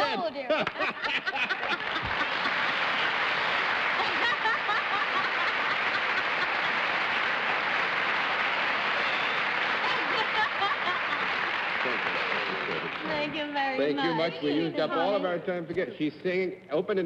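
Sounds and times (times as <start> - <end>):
people laughing: 0.0 - 15.2
audience applauding: 0.6 - 14.4.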